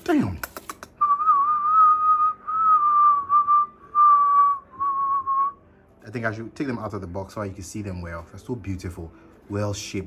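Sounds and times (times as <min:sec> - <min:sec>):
person whistling high note: 0:01.0 - 0:05.6.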